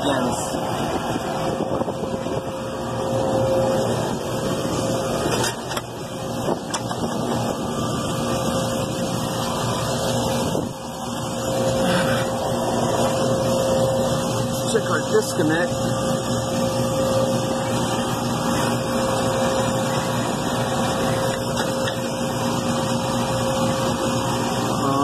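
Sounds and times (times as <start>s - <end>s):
refrigeration units droning: 0.0s - 25.0s.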